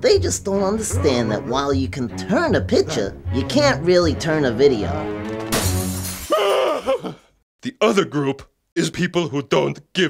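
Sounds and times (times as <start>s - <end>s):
glass shattering: 5.4s - 6.6s.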